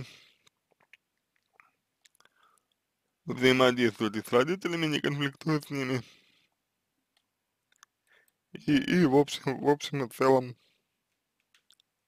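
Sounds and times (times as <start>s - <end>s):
faint mouth clicks: 0.4s - 2.8s.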